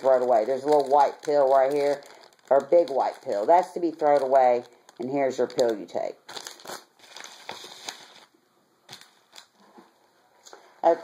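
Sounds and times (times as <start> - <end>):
plastic packet crinkling: 0.0 - 8.3, 8.9 - 9.6.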